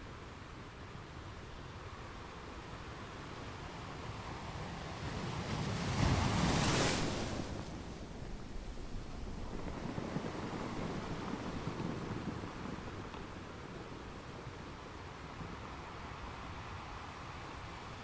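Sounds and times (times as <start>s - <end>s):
wind blowing across microphone: 0.0s - 18.0s.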